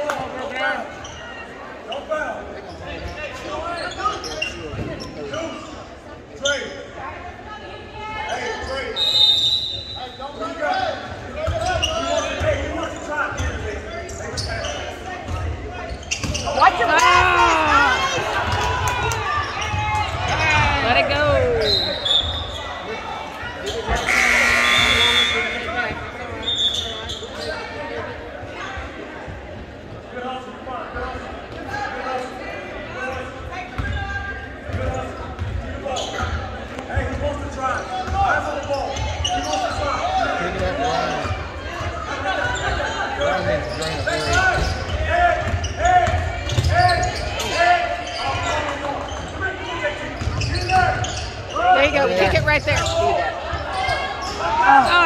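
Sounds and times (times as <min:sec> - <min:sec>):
spectators' voices echoing: 0:00.0 - 0:55.0
loud buzzer blast: 0:24.0 - 0:25.8.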